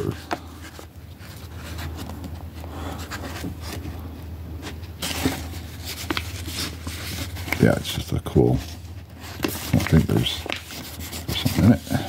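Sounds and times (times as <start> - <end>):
paper envelope rustling: 0.0 - 12.0
steady low hum: 0.0 - 12.0.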